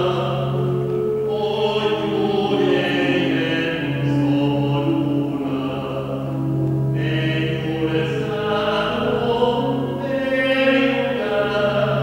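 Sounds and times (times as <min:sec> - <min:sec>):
voices singing a hymn: 0:00.0 - 0:12.0.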